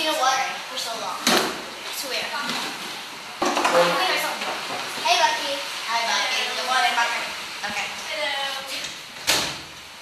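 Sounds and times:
children talking: 0:03.6 - 0:08.9.

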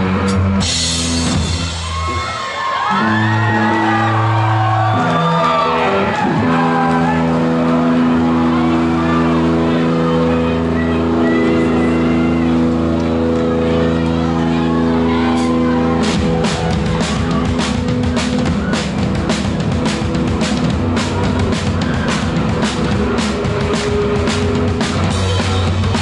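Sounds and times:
live rock band: 0:00.0 - 0:26.0
crowd shouting: 0:01.4 - 0:26.0.

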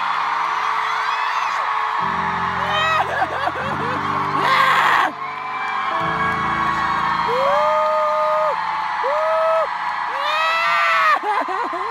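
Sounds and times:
crowd screaming: 0:00.0 - 0:11.9
arena concert music: 0:01.5 - 0:11.9
person screaming in long wails: 0:02.5 - 0:05.2, 0:06.0 - 0:11.9.

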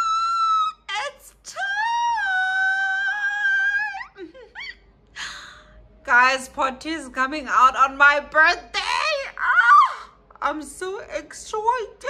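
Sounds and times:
woman squealing excitedly: 0:00.0 - 0:04.8.

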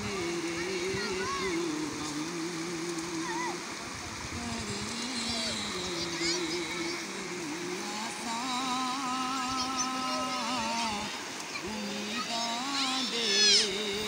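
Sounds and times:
man singing into microphone: 0:00.0 - 0:14.0
river rushing over rocks: 0:00.0 - 0:14.0.

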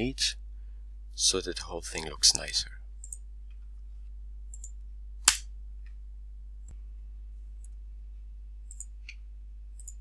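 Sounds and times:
low electrical hum: 0:00.0 - 0:10.0
computer mouse click: 0:03.0 - 0:03.2, 0:04.5 - 0:05.4, 0:08.7 - 0:09.2, 0:09.8 - 0:10.0.

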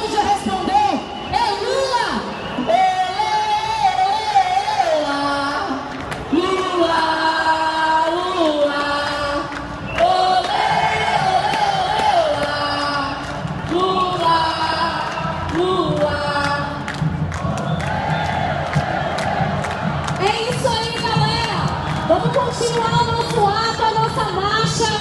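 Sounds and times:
crowd noise: 0:00.0 - 0:25.0
crowd chanting in unison: 0:04.4 - 0:16.6, 0:17.4 - 0:20.2.

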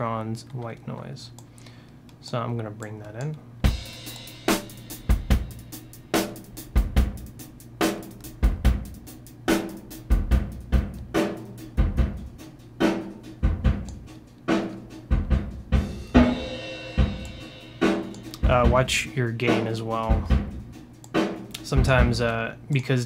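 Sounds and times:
rock drum loop with reverb: 0:03.6 - 0:23.0.

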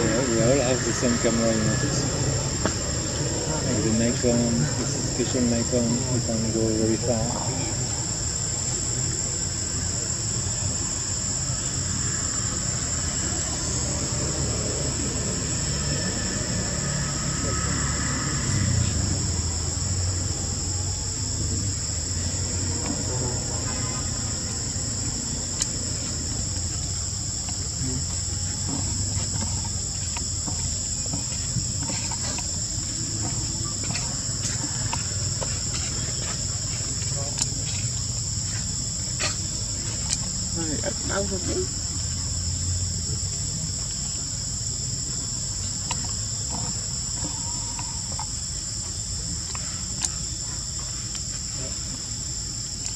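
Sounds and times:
shrill insect chorus: 0:00.0 - 0:52.9.

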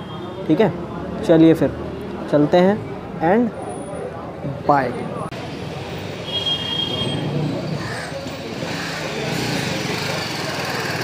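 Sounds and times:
steady traffic noise: 0:00.0 - 0:11.0.

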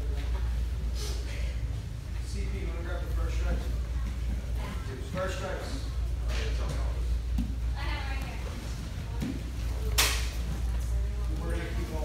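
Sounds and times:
steady low hum: 0:00.0 - 0:12.0
sharp slap: 0:09.9 - 0:10.4.

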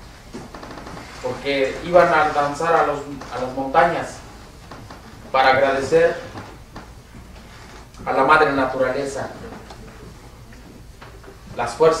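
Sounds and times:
man speaking: 0:01.2 - 0:04.3, 0:05.3 - 0:06.4, 0:08.0 - 0:09.8, 0:11.5 - 0:12.0.

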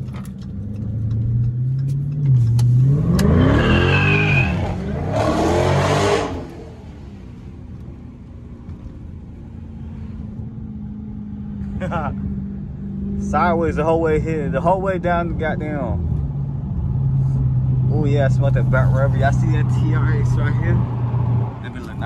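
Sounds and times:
car engine accelerating hard: 0:00.0 - 0:07.8.

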